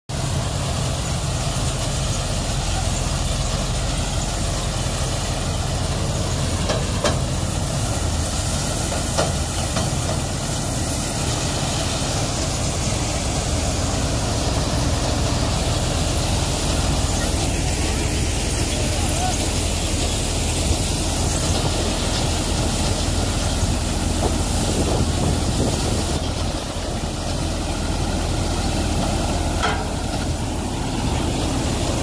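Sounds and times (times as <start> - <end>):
thresher engine and drum running: 0.1 - 32.0.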